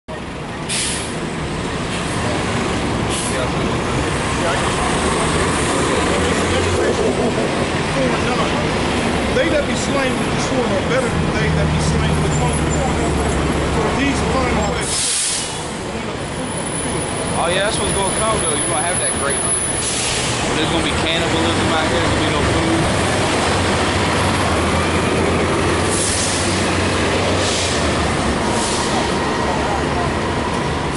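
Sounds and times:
bus engine hum: 0:00.1 - 0:30.9
voices: 0:00.1 - 0:30.9
air brakes hissing: 0:00.7 - 0:01.2, 0:03.1 - 0:03.5, 0:14.8 - 0:15.8, 0:19.6 - 0:20.5, 0:25.9 - 0:29.3.

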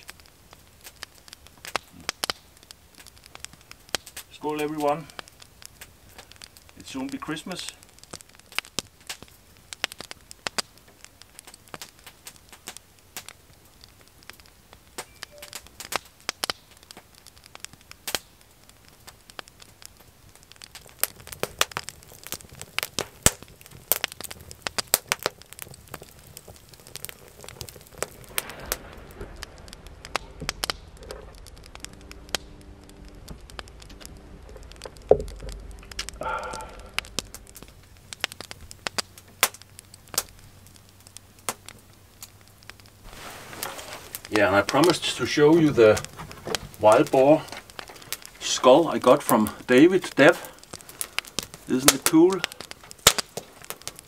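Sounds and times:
wood fire crackling: 0:00.0 - 0:54.0.

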